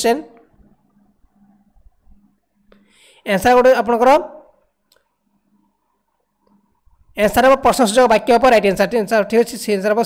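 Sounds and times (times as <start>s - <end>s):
man's voice: 3.3s - 4.4s, 7.2s - 10.0s.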